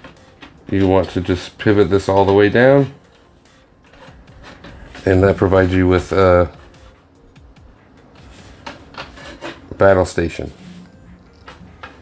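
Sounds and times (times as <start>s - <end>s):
plastic toy rubbing: 3.9s - 6.9s, 8.2s - 9.7s.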